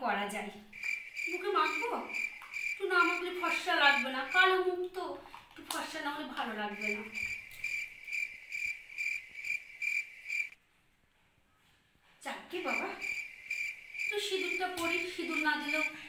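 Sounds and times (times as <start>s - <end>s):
cricket chirping: 0.7s - 4.5s, 6.7s - 10.6s, 12.6s - 16.0s.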